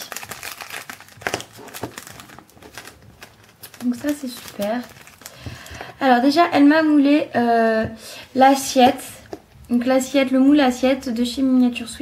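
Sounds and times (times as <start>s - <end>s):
plastic bag crinkling: 0.0s - 6.3s.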